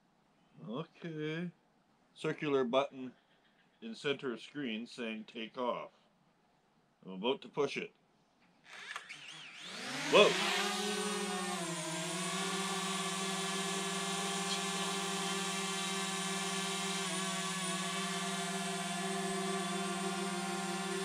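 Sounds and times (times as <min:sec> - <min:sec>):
drone propellers whining and buzzing: 0:08.8 - 0:21.0.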